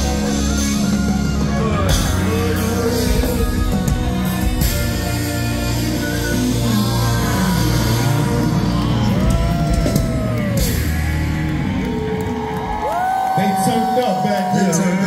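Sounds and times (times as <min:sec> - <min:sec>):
crowd singing and yelling along: 0:00.0 - 0:12.2.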